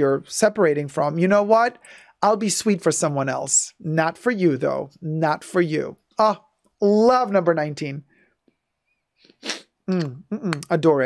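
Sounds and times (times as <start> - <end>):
person sniffing: 9.2 - 10.2.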